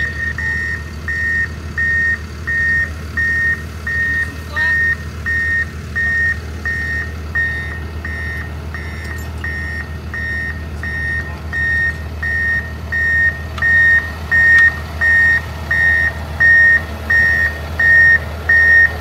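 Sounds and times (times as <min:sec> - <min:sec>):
backup alarm beeping: 0:00.0 - 0:19.0
diesel engine humming: 0:00.0 - 0:19.0.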